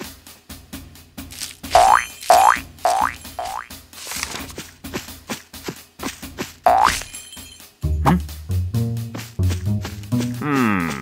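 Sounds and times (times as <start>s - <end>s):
cartoon spring boings: 1.7s - 3.7s, 6.7s - 7.0s.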